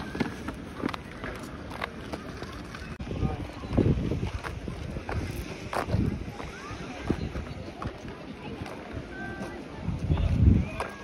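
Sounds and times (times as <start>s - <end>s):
wind buffeting microphone: 2.7s - 11.0s.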